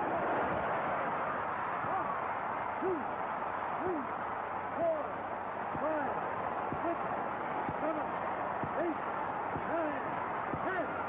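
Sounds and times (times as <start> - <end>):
person counting aloud: 4.8 - 5.1, 5.8 - 6.2, 9.6 - 10.0.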